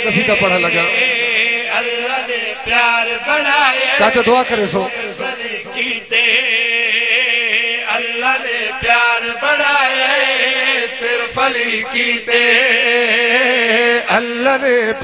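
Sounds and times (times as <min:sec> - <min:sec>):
man chanting through loudspeaker: 0:00.0 - 0:15.0.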